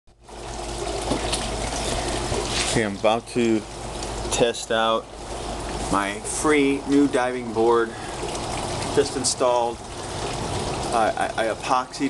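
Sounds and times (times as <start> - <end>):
pool water rushing: 0.2 - 12.0.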